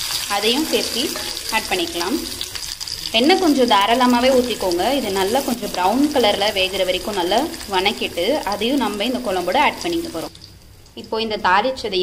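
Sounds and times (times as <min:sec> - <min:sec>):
onions sizzling in oil: 0:00.0 - 0:11.1.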